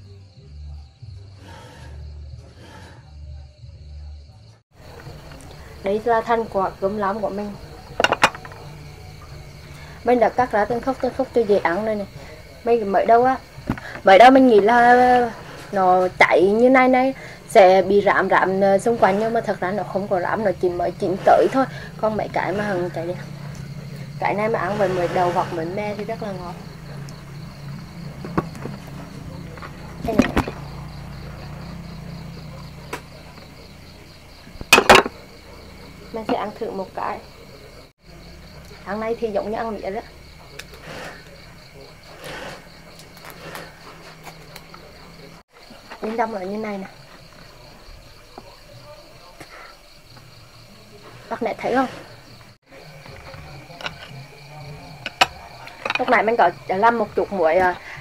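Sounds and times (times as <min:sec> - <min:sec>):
faint high insect trill: 0:00.0 - 0:58.0
dishes clicking and tapping: 0:07.9 - 0:08.7, 0:34.7 - 0:35.2, 0:55.0 - 0:56.2
bamboo knocking on wooden table: 0:08.0 - 0:08.6.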